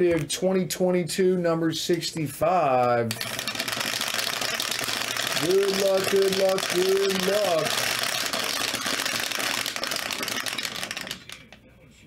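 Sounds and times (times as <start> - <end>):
dice rattling in plastic tumbler: 3.2 - 11.6.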